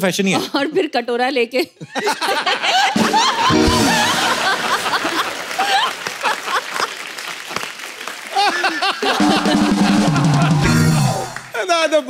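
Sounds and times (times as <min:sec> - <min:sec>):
audience laughing: 0:01.8 - 0:07.2, 0:08.2 - 0:11.5
show music: 0:02.8 - 0:05.8, 0:09.0 - 0:11.8
audience clapping: 0:03.0 - 0:12.0.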